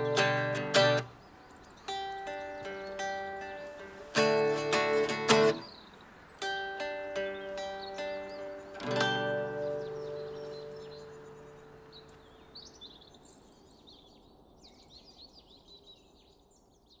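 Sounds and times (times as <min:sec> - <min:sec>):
classical guitar chord strummed: 0:00.0 - 0:01.1, 0:01.9 - 0:05.7, 0:06.4 - 0:12.6
birds chirping: 0:00.0 - 0:14.1.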